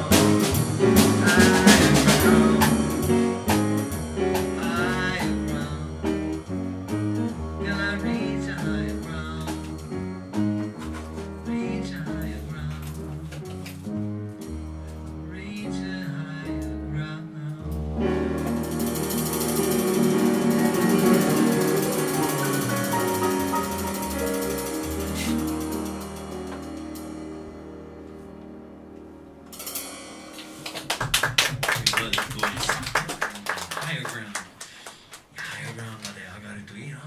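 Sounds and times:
jazz band final chord: 0.0s - 13.0s, 17.6s - 30.7s
cymbal roll: 18.4s - 27.6s
audience applause: 30.4s - 36.2s.

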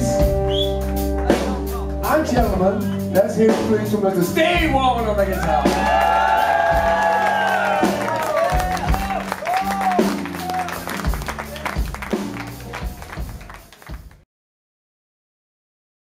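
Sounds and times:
bass: 0.0s - 14.2s
audience clapping and cheering: 5.4s - 14.2s
drum hits: 5.4s - 14.2s.

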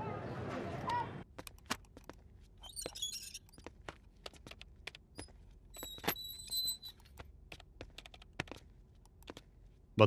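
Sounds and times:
typing on keyboard: 7.6s - 8.3s.

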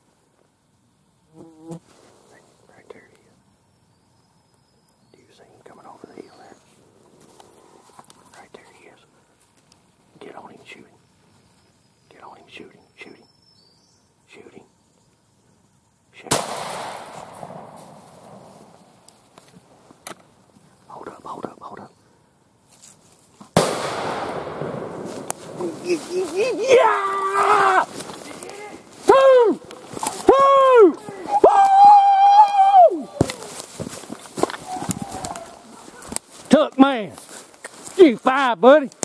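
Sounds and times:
shotgun blasts with echo: 16.3s - 18.5s, 23.6s - 25.6s.

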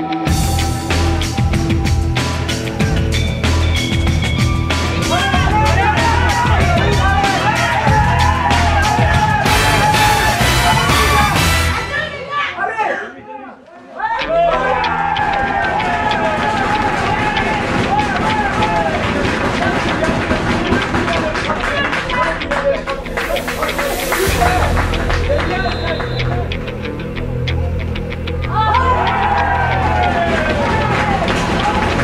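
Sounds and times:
players shouting: 4.9s - 26.6s, 28.4s - 32.0s.

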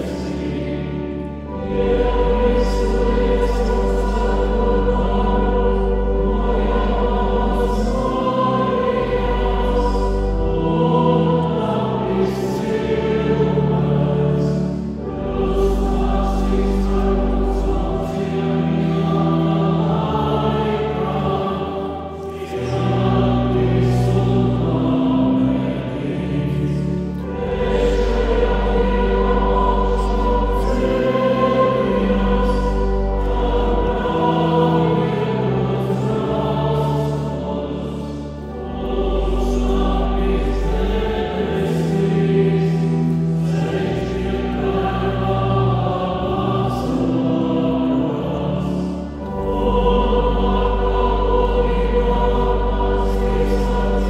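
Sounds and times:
choir singing sacred music: 0.0s - 54.0s
low bass accompaniment: 0.0s - 54.0s.

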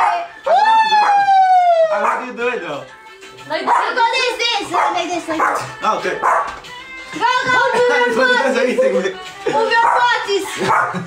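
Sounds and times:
person howling woo: 0.4s - 2.0s.

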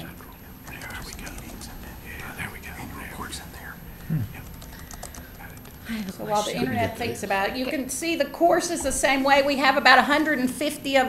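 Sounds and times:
computer keyboard clicking: 0.0s - 6.1s
murmured speech: 0.0s - 11.0s.

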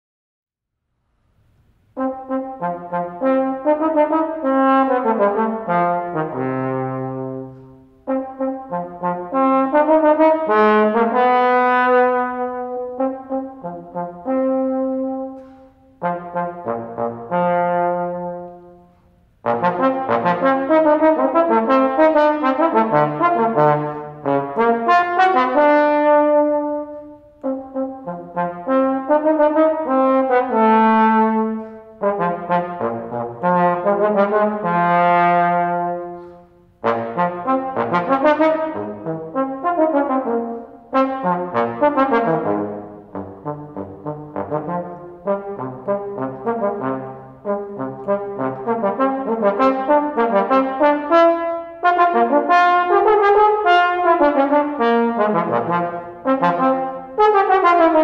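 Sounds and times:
solo trombone playing: 1.8s - 58.0s.

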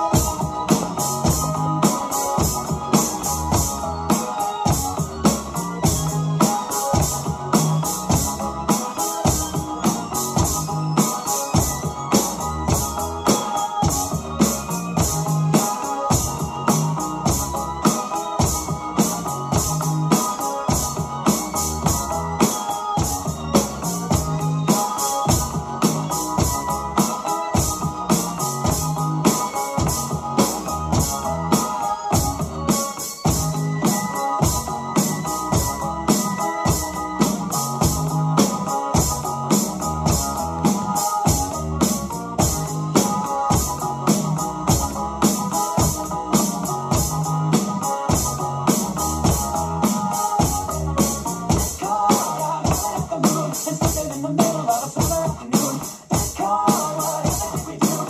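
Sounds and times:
electronic drum beat: 0.0s - 58.0s
synth keyboard melody: 0.0s - 58.0s.

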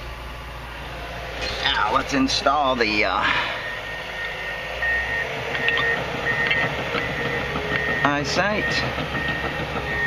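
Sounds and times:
low machine hum: 0.0s - 10.0s
high beeping tone: 3.5s - 10.0s.

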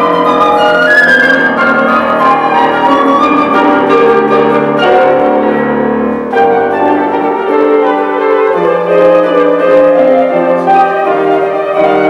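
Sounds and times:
flute: 0.0s - 12.0s
grand piano chords: 0.0s - 12.0s.

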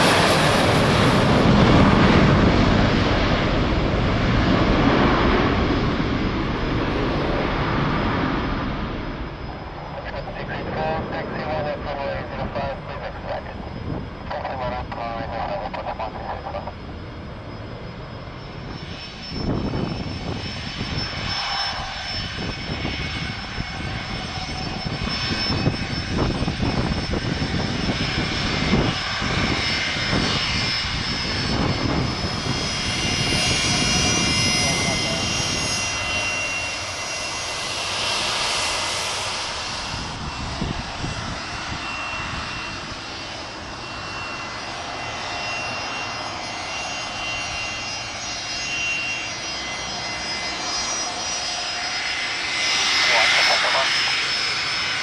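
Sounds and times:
high turbofan whine: 0.0s - 55.0s
jet engines rumbling: 0.0s - 55.0s.

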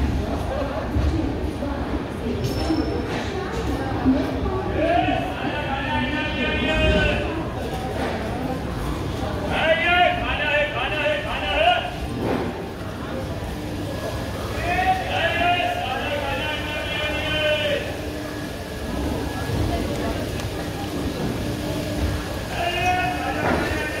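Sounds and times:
train coach rumbling: 3.8s - 24.0s.

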